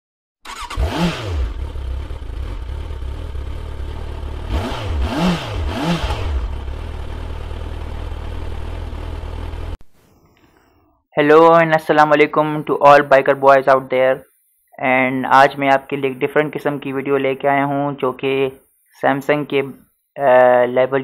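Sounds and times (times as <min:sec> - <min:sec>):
motorcycle engine idling and revving: 0:00.5 - 0:09.8.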